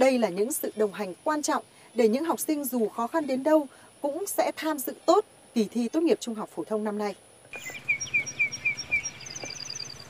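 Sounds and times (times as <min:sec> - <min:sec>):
bird high paired chirps: 0:07.5 - 0:10.0.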